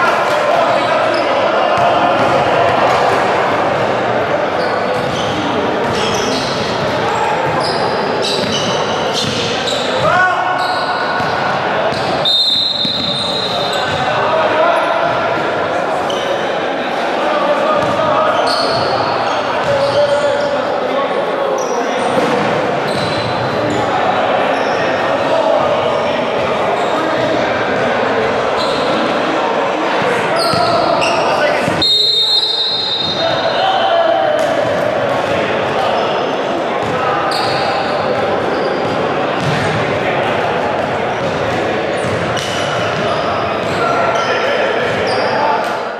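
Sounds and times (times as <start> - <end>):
voices of players and onlookers: 0.0 - 45.9.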